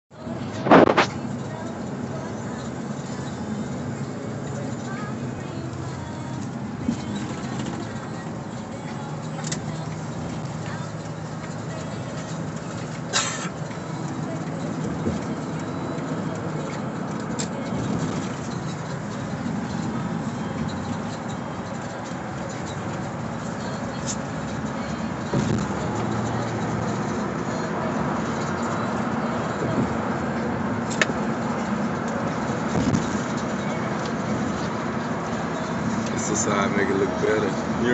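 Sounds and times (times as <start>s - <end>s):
car road and engine noise: 0.0s - 37.9s.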